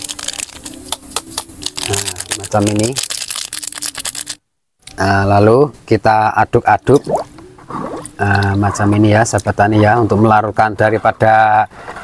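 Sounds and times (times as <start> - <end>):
foil sachet crinkling: 0.0 - 4.4.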